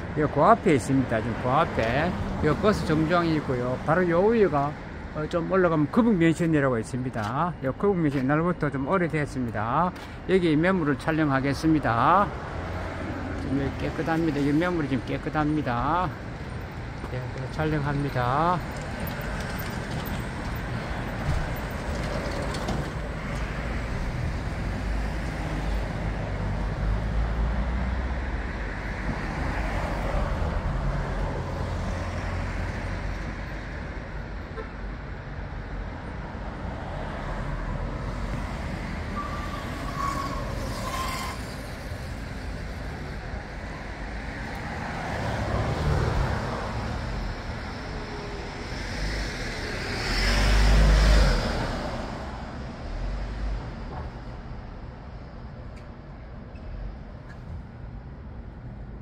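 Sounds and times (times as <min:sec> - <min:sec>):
cars passing: 0:00.0 - 0:59.0.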